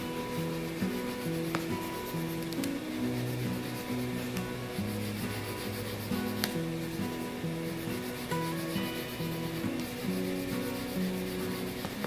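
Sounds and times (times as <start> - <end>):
highlighter rubbing on thin paper: 0.0 - 12.0
soft background music: 0.0 - 12.0.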